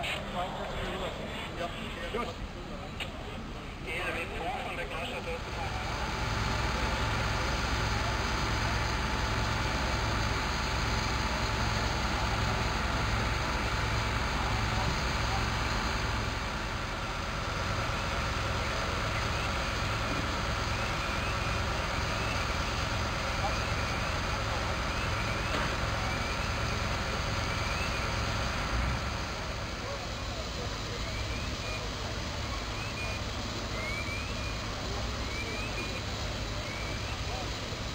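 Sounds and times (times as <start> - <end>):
fire engines running: 0.0 - 37.9.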